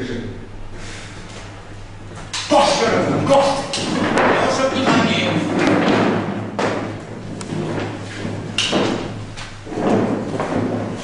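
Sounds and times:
heavy thud: 2.8 - 11.0.

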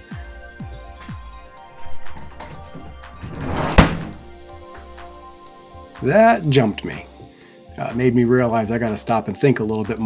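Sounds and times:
dresser crashing on concrete floor: 1.8 - 4.3.

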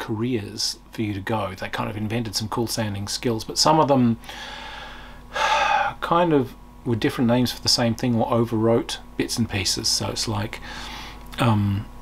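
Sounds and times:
person's sharp in-breath: 4.2 - 6.0, 10.6 - 11.2.

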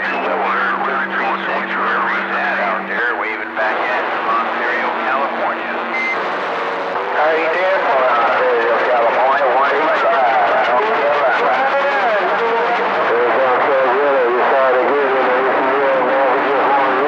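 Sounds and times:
voices through radio receiver: 0.0 - 6.2, 7.0 - 17.0
radio static hiss: 0.0 - 17.0.

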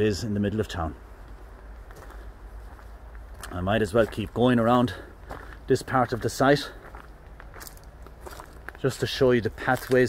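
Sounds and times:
footsteps crunching on leaves: 1.2 - 10.0.

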